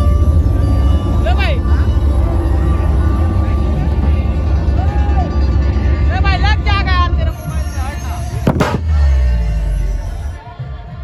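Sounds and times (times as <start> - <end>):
sharp loud crash: 8.5 - 9.1.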